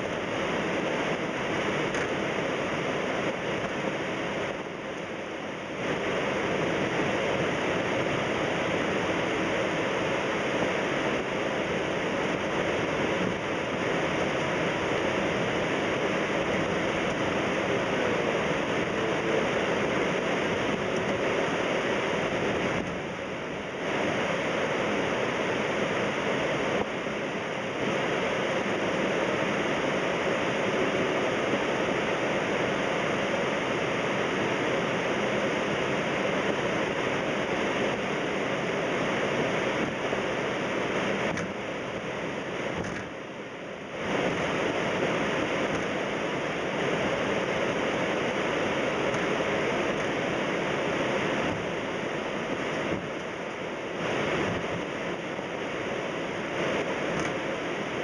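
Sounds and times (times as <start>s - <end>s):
airliner cockpit air and engine hiss: 0.0s - 58.0s.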